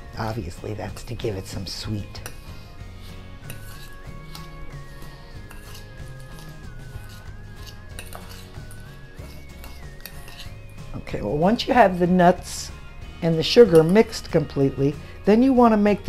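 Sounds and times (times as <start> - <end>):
fork scraping a metal bowl: 1.8 - 11.0, 13.5 - 14.3.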